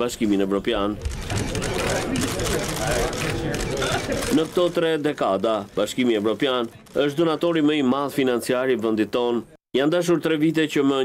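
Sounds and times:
background chatter: 0.2s - 9.5s
camera shutters clicking rapidly: 1.0s - 4.9s.

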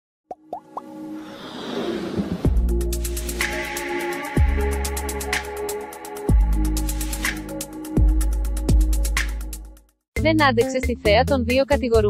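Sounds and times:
quick rising pops: 0.6s - 2.8s
rising whoosh: 1.0s - 7.6s.

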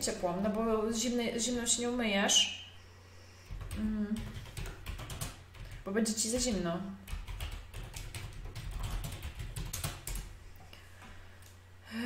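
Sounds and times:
computer keyboard key clicks: 7.1s - 10.3s.

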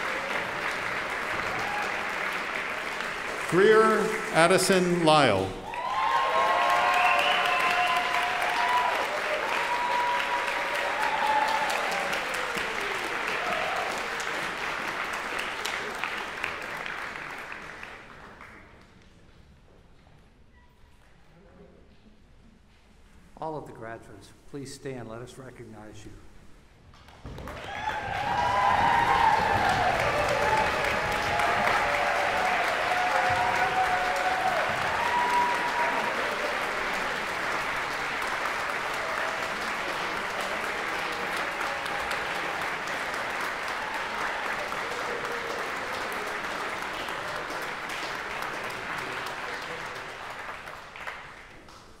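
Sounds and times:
audience applauding: 0.0s - 18.8s, 27.3s - 52.0s.

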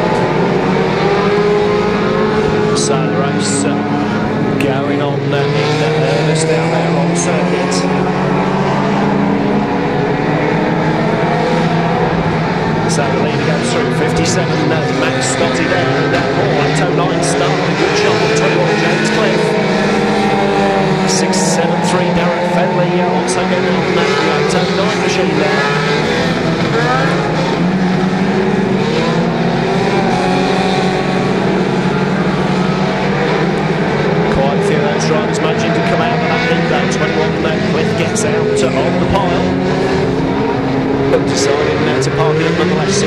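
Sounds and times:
racing car engines revving: 0.0s - 43.0s.

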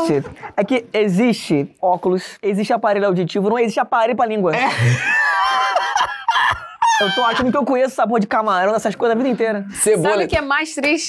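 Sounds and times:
man's shrill laughter: 4.6s - 7.6s.

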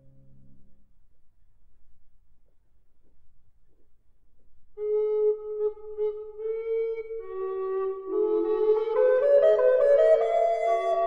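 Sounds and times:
flute-like woodwind solo: 4.8s - 11.0s.

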